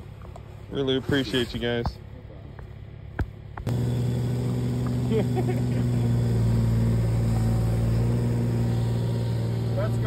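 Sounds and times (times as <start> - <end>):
diesel engine idling: 3.7 - 10.0.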